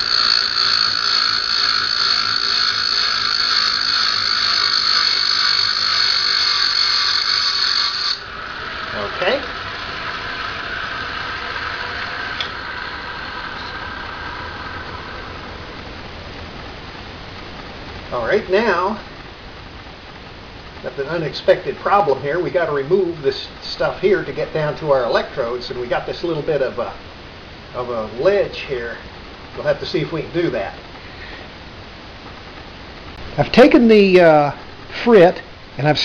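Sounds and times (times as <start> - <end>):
diamond saw grinding glass: 0.0 - 15.5
machine running: 0.0 - 35.9.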